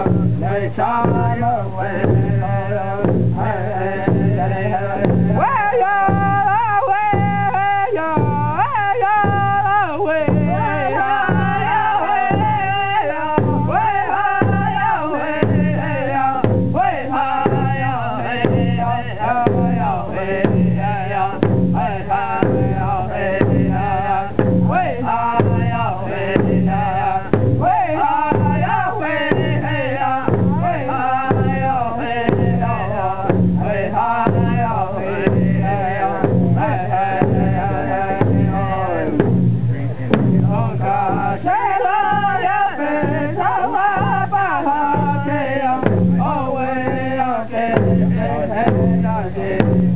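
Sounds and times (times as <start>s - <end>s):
large hide drum beating: 0.0s - 49.9s
men singing together: 0.0s - 49.9s.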